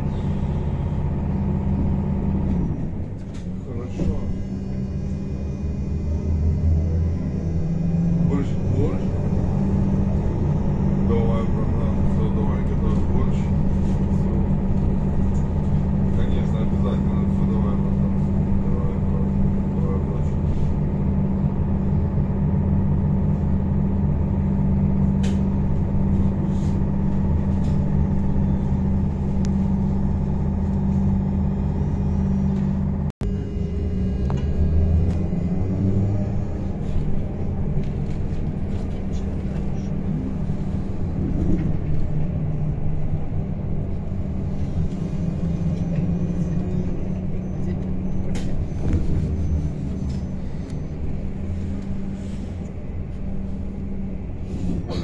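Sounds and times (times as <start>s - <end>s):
electric traction hum: 0.0s - 55.0s
road and tyre noise: 0.0s - 55.0s.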